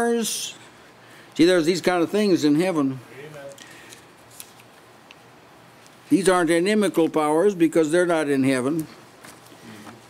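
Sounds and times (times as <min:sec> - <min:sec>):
book pages rustling: 0:04.3 - 0:04.8.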